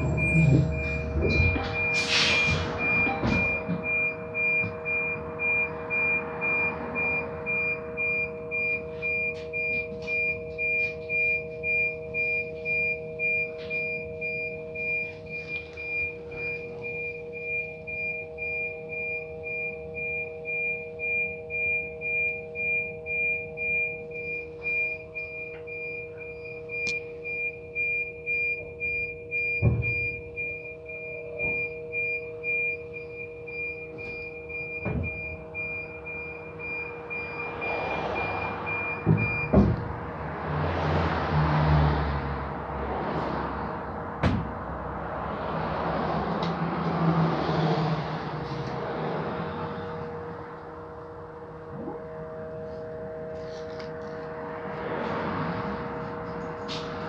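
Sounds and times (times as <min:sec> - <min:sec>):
high beeps: 0:00.0 - 0:39.7
bus interior hum: 0:00.0 - 0:57.0.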